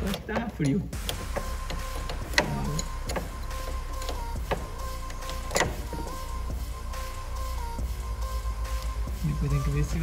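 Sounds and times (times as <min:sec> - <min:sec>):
wrench clicking on bolt: 0:00.0 - 0:06.3.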